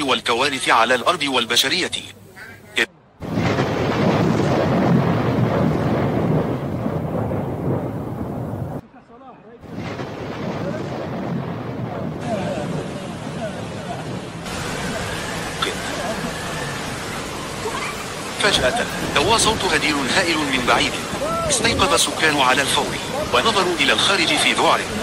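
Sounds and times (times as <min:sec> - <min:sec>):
flood torrent roaring: 0:00.0 - 0:08.8, 0:09.6 - 0:25.0.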